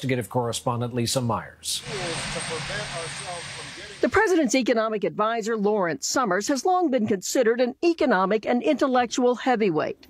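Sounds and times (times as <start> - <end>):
rushing outdoor noise: 1.8 - 4.2.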